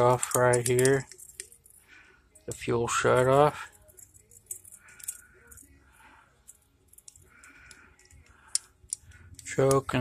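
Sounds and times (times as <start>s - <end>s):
light plastic and metal clicks: 0.0s - 1.8s, 6.4s - 10.0s.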